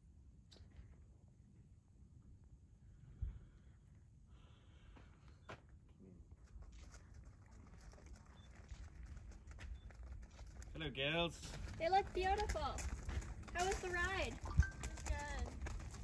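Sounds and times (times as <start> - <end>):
horse hooves on gravel: 6.3 - 16.0.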